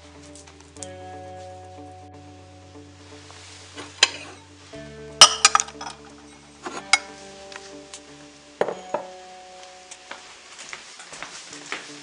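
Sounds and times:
ceramic bowls clinking: 0:05.2 - 0:07.1.

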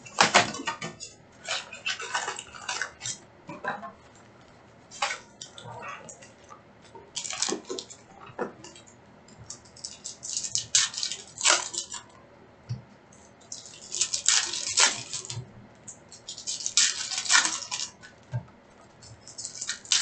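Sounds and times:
foil wrappers crinkling: 0:00.0 - 0:03.2, 0:07.1 - 0:08.8, 0:09.4 - 0:12.1, 0:13.2 - 0:20.0.

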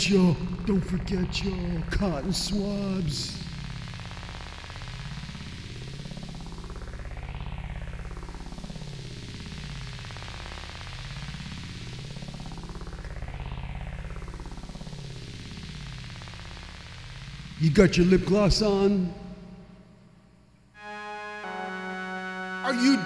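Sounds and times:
synthesizer sustained chord sweeping: 0:20.8 - 0:23.0.

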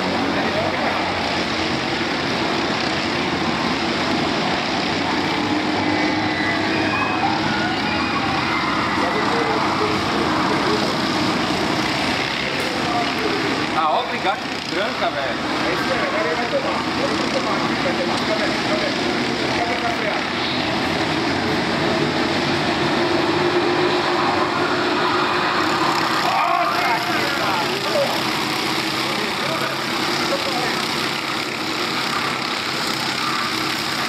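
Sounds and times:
racing kart engines: 0:00.0 - 0:34.0.

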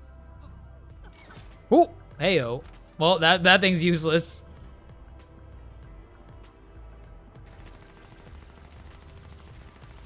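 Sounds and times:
rapid gunfire: 0:07.4 - 0:10.0.

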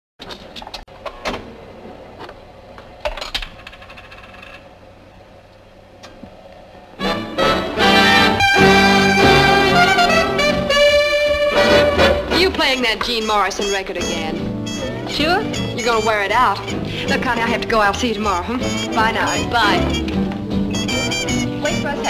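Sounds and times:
swing big band music: 0:07.0 - 0:22.0.

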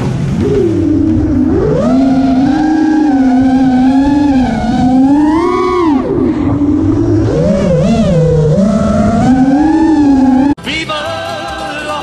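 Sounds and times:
drone motors whining: 0:00.3 - 0:10.6.

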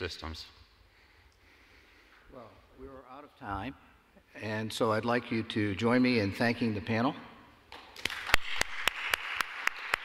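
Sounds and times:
one person clapping loudly: 0:07.7 - 0:10.0
audience applause: 0:08.0 - 0:10.0.

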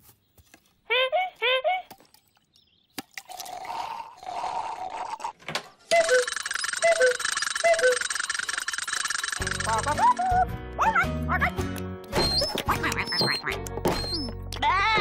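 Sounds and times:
cuckoo clock calling: 0:05.9 - 0:10.4
cartoon music with gliding notes: 0:09.4 - 0:15.0.

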